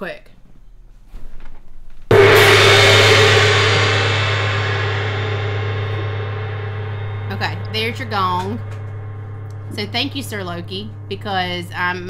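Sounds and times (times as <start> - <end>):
gong ringing: 2.1 - 12.0.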